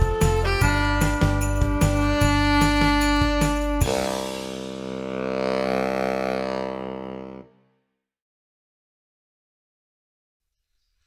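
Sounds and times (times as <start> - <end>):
sustained drone chord: 3.2 - 7.5.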